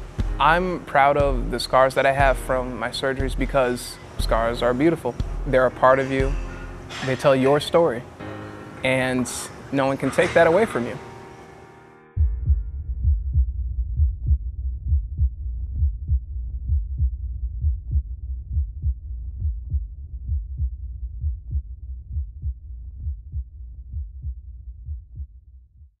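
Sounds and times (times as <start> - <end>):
heartbeat low beats: 0.0 - 1.6, 2.2 - 3.6, 4.2 - 6.7, 12.2 - 26.0
low rumble: 12.2 - 25.9.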